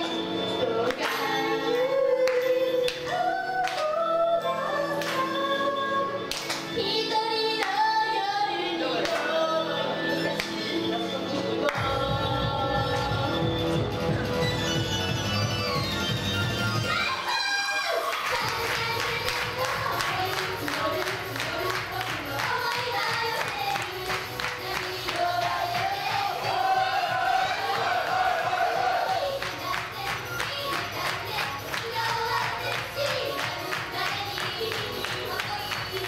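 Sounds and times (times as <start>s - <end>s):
women singing over pop music: 0.0s - 14.2s, 16.9s - 36.0s
audience clapping in rhythm: 0.8s - 1.3s, 2.2s - 4.0s, 5.0s - 5.3s, 6.2s - 8.0s, 9.0s - 9.4s, 10.4s - 10.6s, 11.4s - 12.0s, 18.0s - 36.0s
audience cheering: 26.3s - 29.3s.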